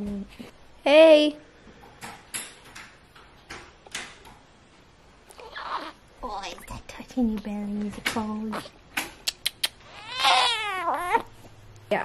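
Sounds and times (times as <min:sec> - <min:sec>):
newborn baby crying: 0:05.3 - 0:06.0, 0:09.8 - 0:11.4.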